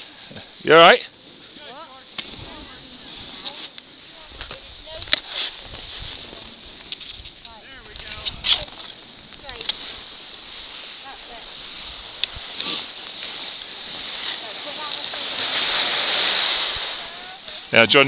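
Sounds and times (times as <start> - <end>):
skis scraping over snow: 0.2 - 18.0
faint voices: 14.3 - 18.0.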